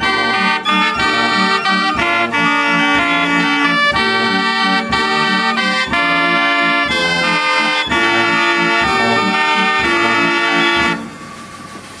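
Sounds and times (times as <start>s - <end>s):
band organ chord: 0.0s - 11.2s
bass drum stroke: 0.0s - 12.0s.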